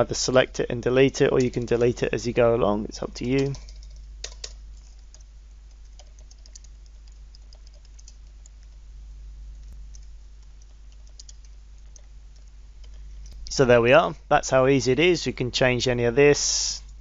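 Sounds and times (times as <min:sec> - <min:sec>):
steady low hum: 0:00.0 - 0:17.0.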